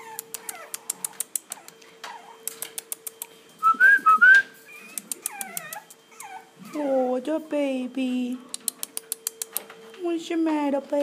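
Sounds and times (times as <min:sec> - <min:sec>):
puppies whining and squealing: 0:00.0 - 0:07.4
faint hum: 0:00.0 - 0:11.0.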